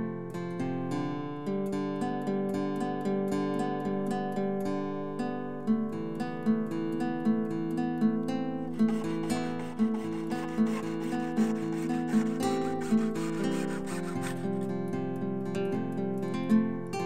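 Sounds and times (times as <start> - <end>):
strummed acoustic guitar music: 0.0 - 17.0
saw cutting plastic sheet: 8.7 - 14.8.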